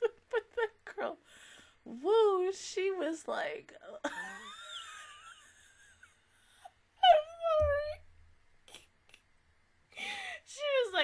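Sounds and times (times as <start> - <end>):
low thump: 7.6 - 8.0.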